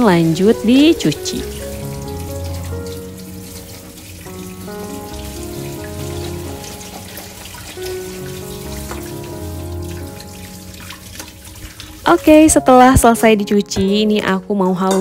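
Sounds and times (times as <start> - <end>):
tap water splashing in metal sink: 0.0 - 13.1
slow background music: 0.0 - 15.0.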